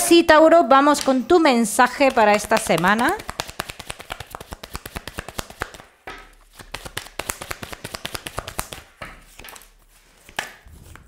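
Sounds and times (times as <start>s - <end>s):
cards being shuffled: 2.0s - 11.0s.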